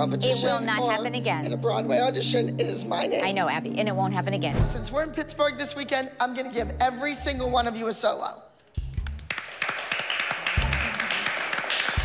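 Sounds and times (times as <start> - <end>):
background music with bass line: 4.4 - 8.0, 8.6 - 9.4, 10.6 - 11.2
girls clapping: 9.0 - 12.0.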